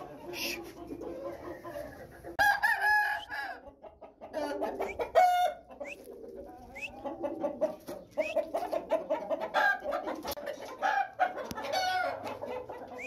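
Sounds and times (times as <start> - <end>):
rooster crowing: 2.4 - 3.7, 4.4 - 5.6
soft clucks: 3.7 - 13.0.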